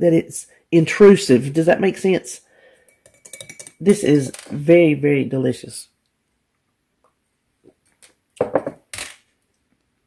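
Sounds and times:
glass clinking: 2.8 - 4.0, 8.4 - 8.8
glass knocking on countertop: 8.4 - 8.8.

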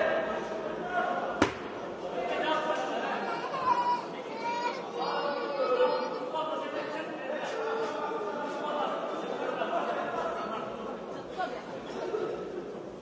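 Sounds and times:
people talking and calling out: 0.0 - 13.0.

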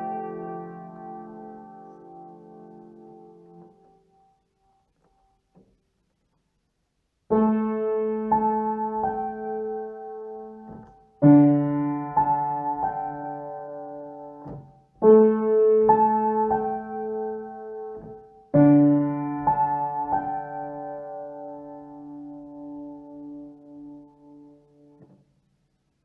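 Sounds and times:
piano keyboard playing slow chords: 0.0 - 5.5, 7.3 - 25.1.

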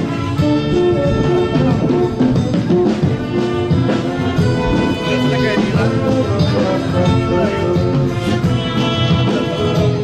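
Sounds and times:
instrumental music: 0.0 - 10.0.

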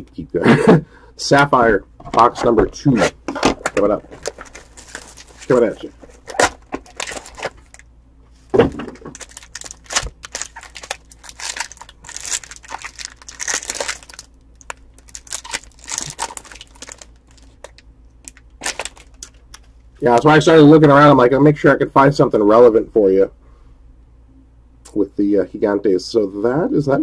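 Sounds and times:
foil wrapper crinkling and tearing: 3.6 - 7.8, 8.9 - 19.7.

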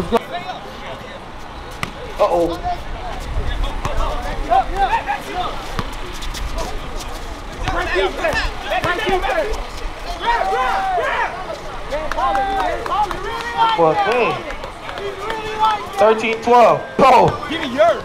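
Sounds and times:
many voices talking and shouting: 0.0 - 18.0.

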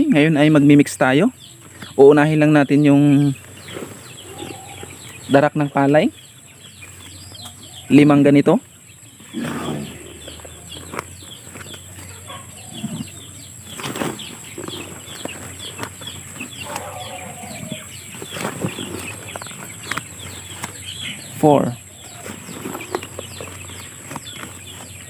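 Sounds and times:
birds chirping: 0.0 - 25.0.

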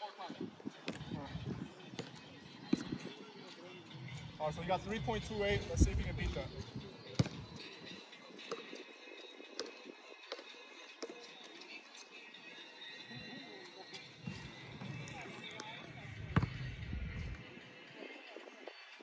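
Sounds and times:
basketball bouncing on pavement: 7.2 - 7.4, 16.3 - 17.0.

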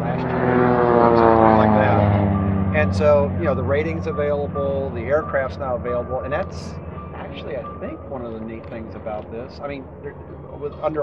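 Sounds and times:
aircraft engine and propeller drone: 0.0 - 11.0.

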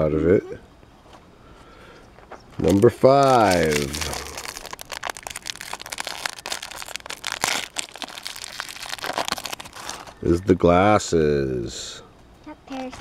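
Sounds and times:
foil wrapper crinkling: 2.6 - 10.2.

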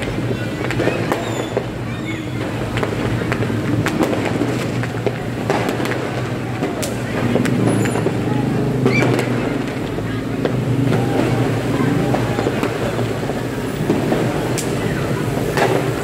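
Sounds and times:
distant voices: 0.0 - 16.0
firework pops: 0.0 - 16.0
motorbikes passing: 0.0 - 16.0
traffic noise: 0.0 - 16.0.

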